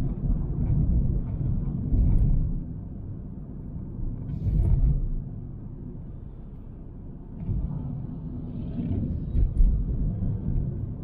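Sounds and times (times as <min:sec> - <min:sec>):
car road and tyre rumble: 0:00.0 - 0:11.0.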